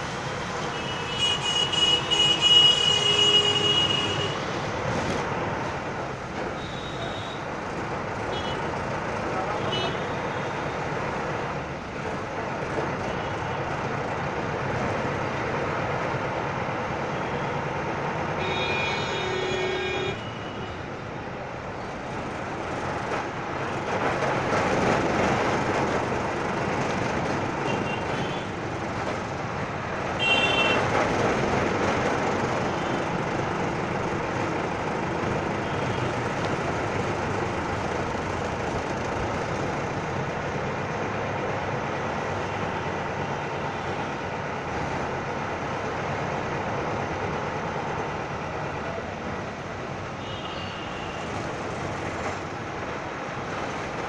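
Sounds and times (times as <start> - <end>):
road noise: 0.0 - 54.0
vehicle horns honking: 0.8 - 4.5
bus diesel engine running: 20.9 - 50.0.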